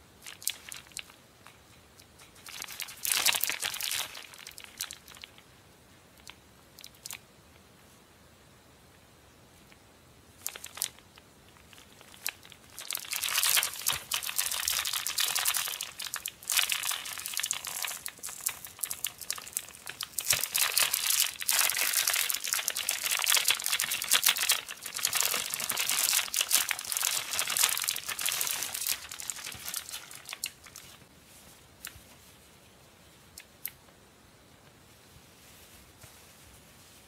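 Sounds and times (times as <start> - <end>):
plastic bag crinkling: 0.2 - 1.6, 2.2 - 5.4, 10.4 - 32.2.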